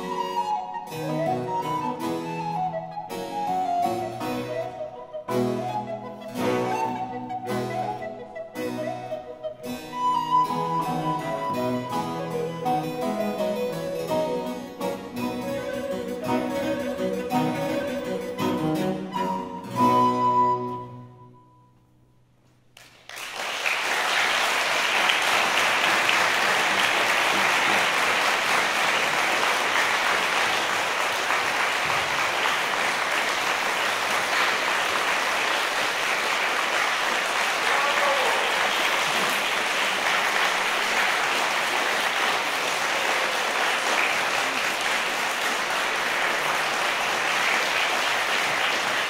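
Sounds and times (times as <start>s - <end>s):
audience applauding: 22.8s - 49.0s.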